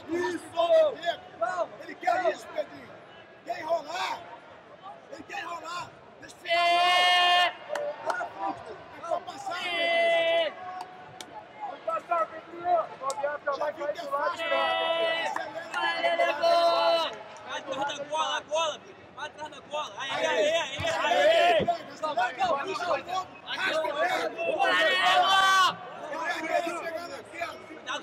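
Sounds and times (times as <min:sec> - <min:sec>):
crowd chatter: 0:00.0 - 0:28.0.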